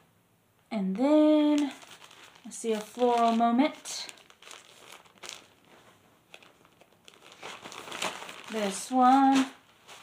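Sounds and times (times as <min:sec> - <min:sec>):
plastic packaging crinkling: 0:01.4 - 0:10.0.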